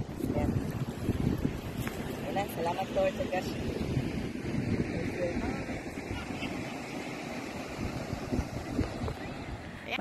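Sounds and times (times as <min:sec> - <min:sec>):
surf breaking on beach: 0:00.0 - 0:10.0
wind buffeting microphone: 0:00.0 - 0:10.0.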